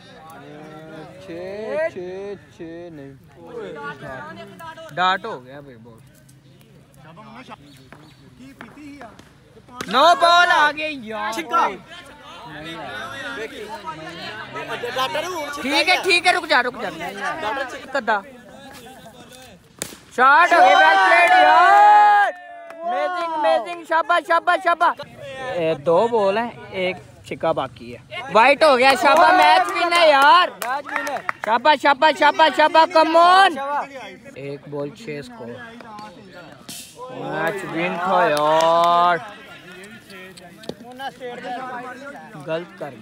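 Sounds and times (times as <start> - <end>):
people talking and chattering: 0.0 - 43.0.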